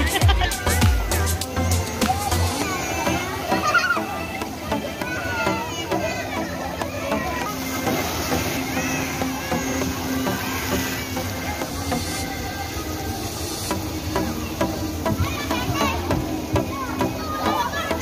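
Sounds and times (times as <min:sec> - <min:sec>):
background music: 0:00.0 - 0:18.0
children calling out and playing: 0:00.0 - 0:18.0.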